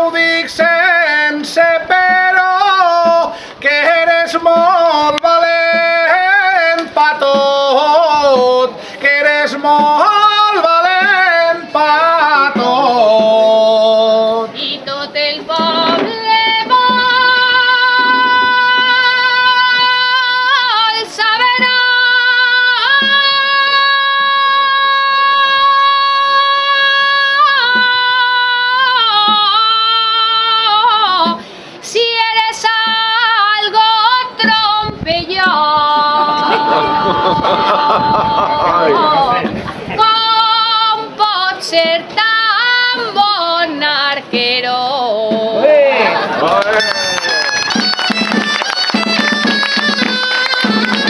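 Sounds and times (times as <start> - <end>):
high voice singing: 0.0 - 45.9.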